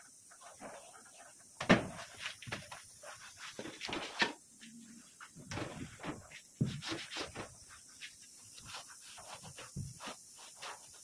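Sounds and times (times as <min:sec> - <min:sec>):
cloth wiping steel shelves: 0:00.3 - 0:11.0.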